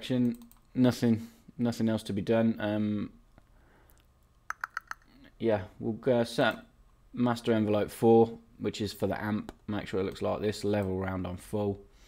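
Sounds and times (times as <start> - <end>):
sharp computer clicks: 0.2 - 0.7, 4.5 - 5.1.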